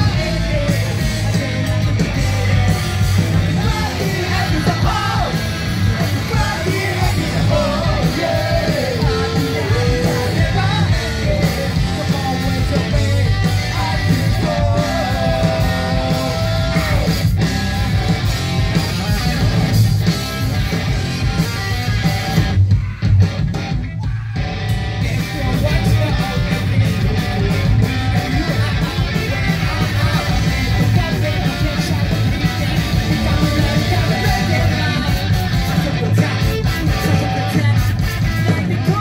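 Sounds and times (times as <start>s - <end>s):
bass guitar: 0.0s - 39.0s
distorted electric guitar: 0.0s - 39.0s
drums: 0.0s - 39.0s
person singing into microphone: 6.0s - 17.2s, 25.2s - 39.0s.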